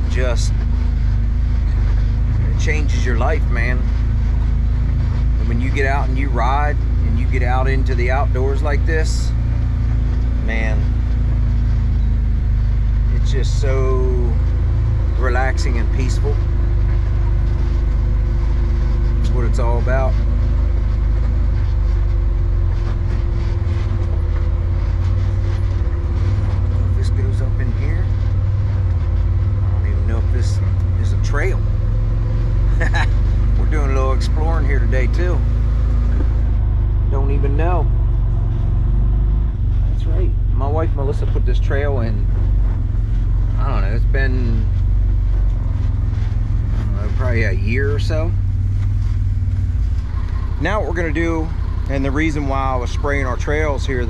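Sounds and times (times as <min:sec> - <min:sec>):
vehicle engine rumble: 0:00.0 - 0:54.0.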